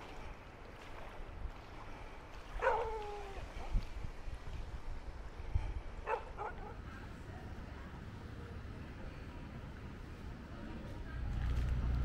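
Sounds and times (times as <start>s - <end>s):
dog barking: 2.6s - 3.0s, 6.0s - 6.8s
low steady rumble: 5.1s - 12.0s.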